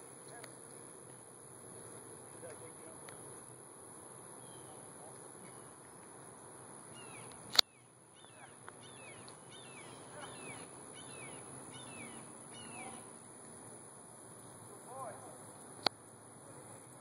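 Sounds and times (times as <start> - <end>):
high-pitched insect drone: 0.0 - 17.0
bird chirping: 4.4 - 6.1, 6.9 - 13.1.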